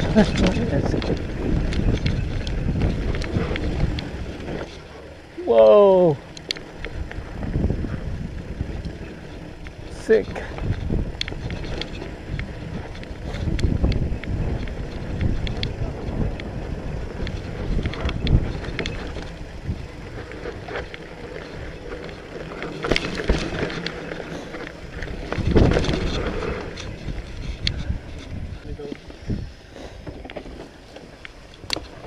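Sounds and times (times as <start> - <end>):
bike rattling over bumps: 0.0 - 32.0
tyres rumbling on dirt: 0.0 - 32.0
wind buffeting microphone: 0.0 - 32.0.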